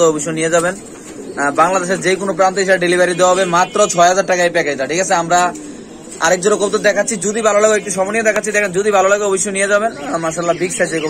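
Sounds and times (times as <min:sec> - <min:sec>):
man talking: 0:00.0 - 0:11.0
pigeons cooing: 0:00.0 - 0:11.0.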